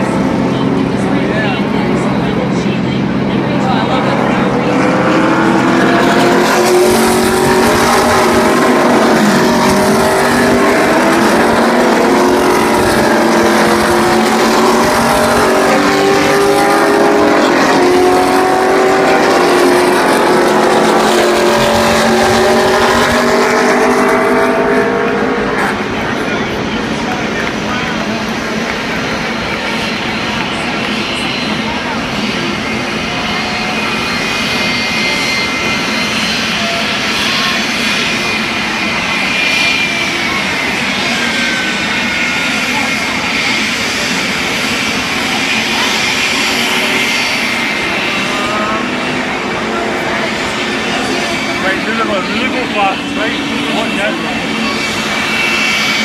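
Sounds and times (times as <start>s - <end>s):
race car engines running: 0.0s - 56.0s.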